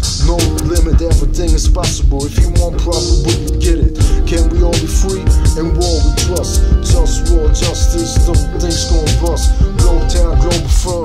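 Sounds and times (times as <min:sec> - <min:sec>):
heavy bass beat: 0:00.0 - 0:11.0
rapping: 0:00.0 - 0:11.0.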